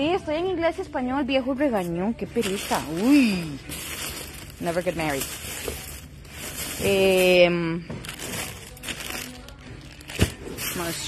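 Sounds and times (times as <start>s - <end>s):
plastic bags crinkling: 2.2s - 11.0s.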